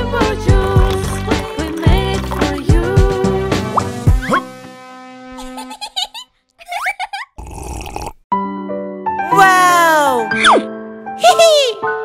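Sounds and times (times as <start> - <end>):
bouncy children's music: 0.0 - 4.5
rising cartoon bloop effects: 3.7 - 4.6.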